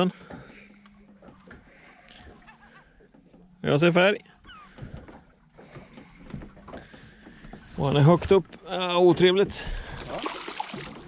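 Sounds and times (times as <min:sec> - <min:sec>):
sea water lapping against boat hull: 0:00.0 - 0:11.0.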